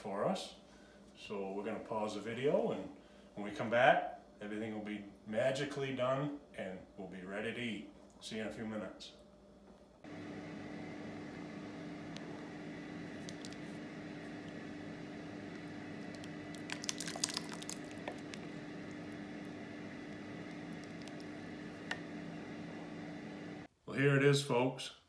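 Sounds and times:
steady low hum: 0:00.5 - 0:23.7
ladle stirring thick soup: 0:11.2 - 0:23.0.

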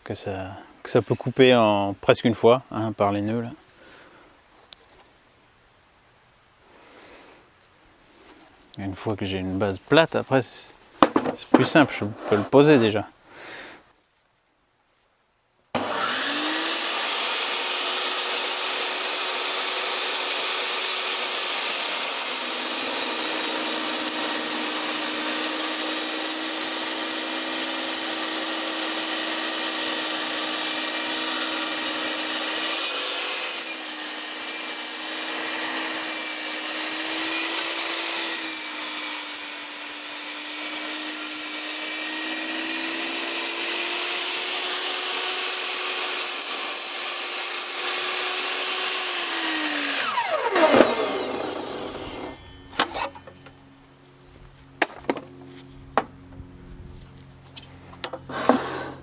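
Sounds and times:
loud knock: 0:11.0 - 0:11.4
table saw cutting a log: 0:15.8 - 0:53.5, 0:58.3 - 0:59.0
saw spinning down with whine: 0:15.8 - 0:53.7.

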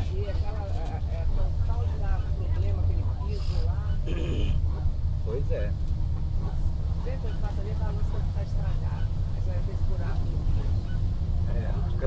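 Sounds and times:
bus engine and road rumble: 0:00.0 - 0:12.0
voices talking faintly: 0:00.0 - 0:12.0.

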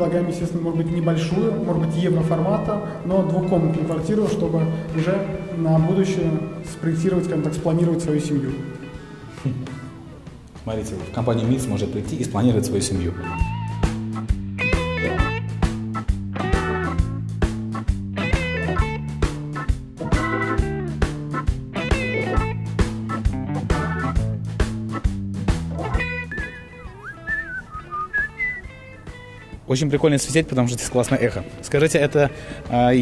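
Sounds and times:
background music with steady beat: 0:00.0 - 0:33.0
wavering melody line: 0:26.3 - 0:28.6.

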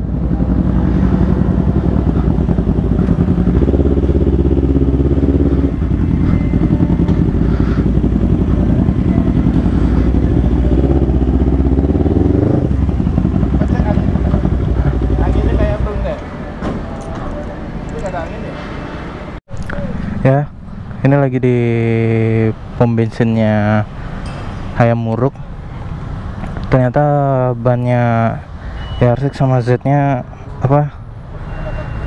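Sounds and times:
motorcycle engine at low revs: 0:00.0 - 0:16.2.

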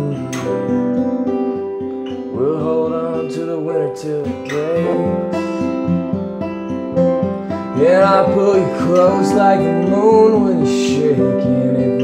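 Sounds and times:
man singing: 0:00.0 - 0:01.0, 0:02.3 - 0:05.6, 0:07.7 - 0:12.0
acoustic guitar picked: 0:00.0 - 0:12.0.

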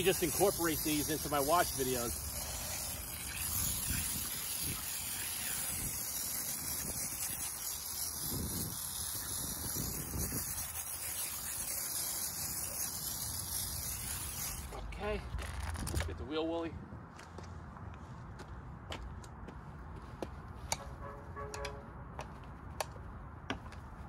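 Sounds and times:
foam sprayer hissing: 0:00.0 - 0:14.8.

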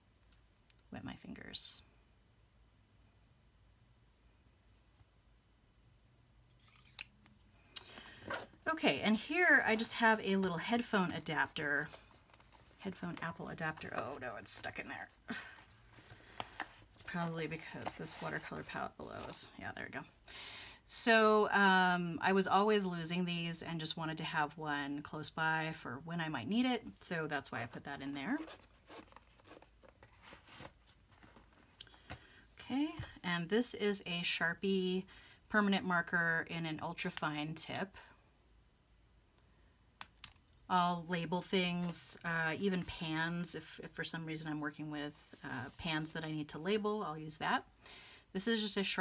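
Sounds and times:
handling rustle: 0:28.4 - 0:31.8.

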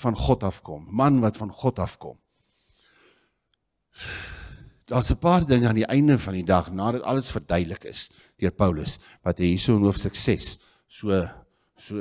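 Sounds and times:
man breathing into microphone: 0:04.0 - 0:04.8.

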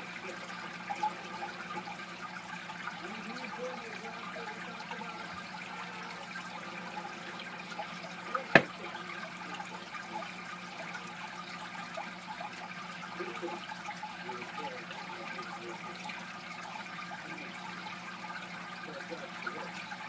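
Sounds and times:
filter water trickling: 0:00.0 - 0:20.0.

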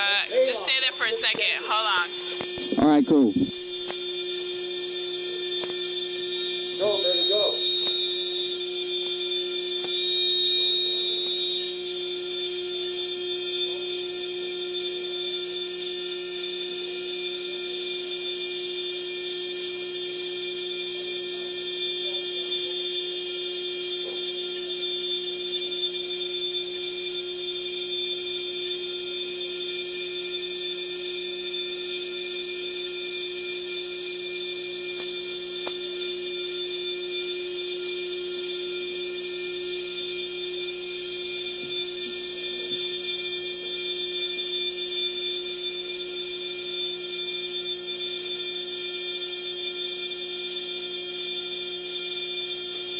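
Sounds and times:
fire alarm continuous tone: 0:00.0 - 0:52.9.

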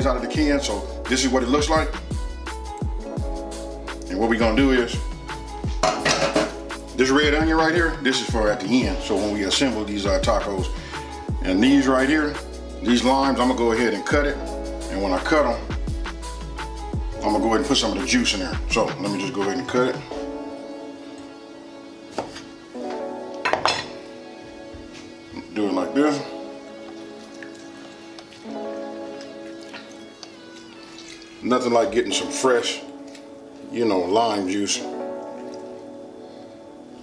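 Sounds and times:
music with deep bass beat: 0:00.0 - 0:09.0, 0:14.1 - 0:19.0
background music: 0:00.0 - 0:37.0
glass kitchenware clattering: 0:05.8 - 0:06.6, 0:23.5 - 0:24.0.

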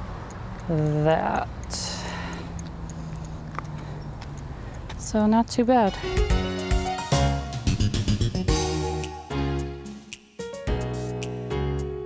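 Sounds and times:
light ticking: 0:00.0 - 0:07.1
bicycle rolling on pavement: 0:00.2 - 0:05.6.

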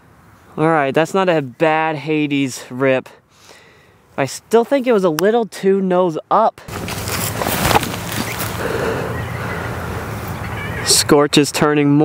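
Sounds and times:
disc thrown whoosh: 0:06.7 - 0:08.6.

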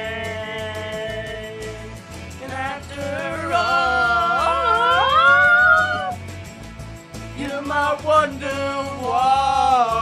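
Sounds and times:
rhythmic accompaniment: 0:00.0 - 0:10.0
men singing a wailing note: 0:02.6 - 0:06.2.

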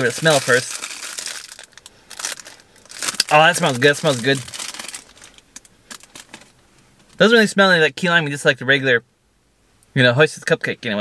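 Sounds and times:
plastic wrapper rustling: 0:00.0 - 0:06.6.

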